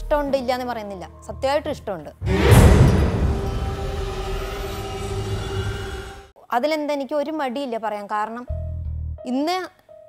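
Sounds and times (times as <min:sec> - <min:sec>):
dramatic drone chord: 0:02.2 - 0:06.3
low rumble: 0:02.2 - 0:06.3.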